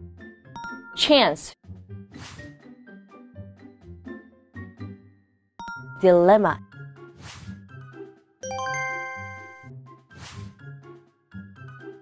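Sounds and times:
light background music: 0.0s - 12.0s
bright bell-like chime: 8.4s - 9.7s.

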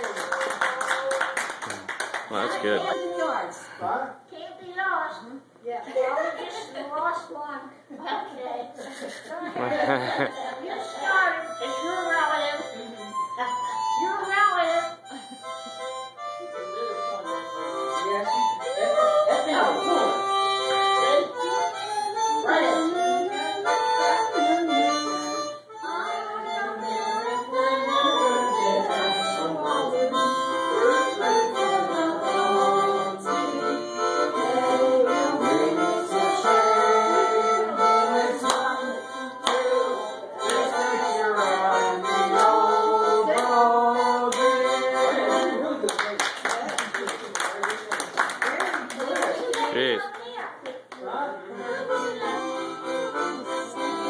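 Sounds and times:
harmonica melody: 2.3s - 4.1s, 9.6s - 45.9s, 51.4s - 54.0s.

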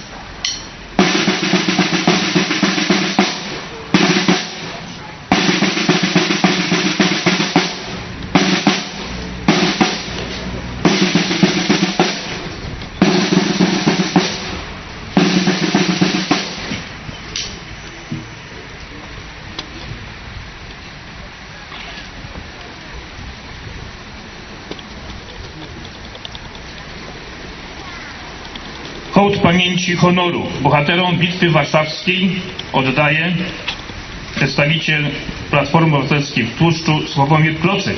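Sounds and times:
marching snare drum rolls: 1.0s - 17.1s, 29.0s - 33.7s, 34.3s - 37.9s.

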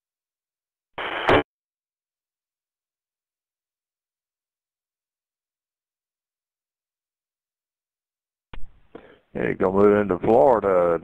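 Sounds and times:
radio static burst: 1.0s - 1.4s.

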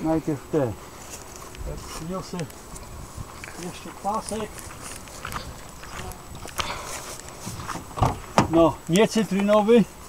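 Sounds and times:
footsteps through long grass: 0.0s - 8.4s
sharp ticks: 8.8s - 9.7s.

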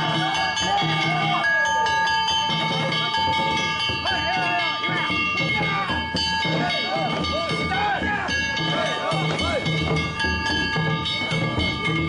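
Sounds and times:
metal gongs struck rapidly: 0.0s - 12.0s.

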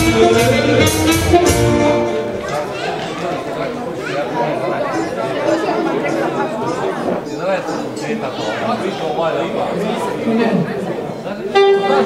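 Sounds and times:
band music: 0.0s - 3.7s, 11.5s - 12.0s
people talking over one another: 1.8s - 12.0s.

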